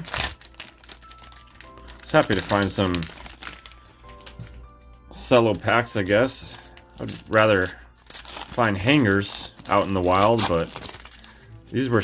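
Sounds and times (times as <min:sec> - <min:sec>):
plastic wrapper crinkling: 0:00.0 - 0:12.0
soft background music: 0:00.0 - 0:12.0.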